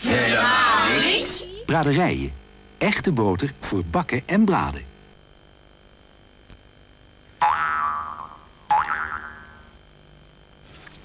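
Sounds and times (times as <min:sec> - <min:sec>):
cartoon boing: 0:07.4 - 0:09.8.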